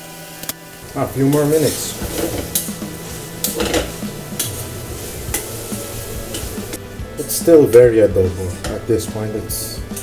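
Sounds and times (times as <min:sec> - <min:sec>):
light sizzle of pasta: 0:00.0 - 0:08.2.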